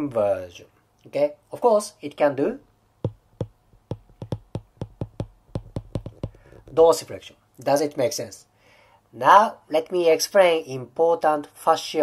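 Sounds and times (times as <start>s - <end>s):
stylus tapping on glass screen: 3.0s - 6.8s.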